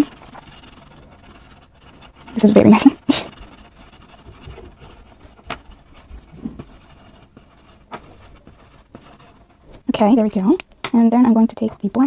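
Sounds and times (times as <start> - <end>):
marker scratching on paper: 0.0 - 10.5.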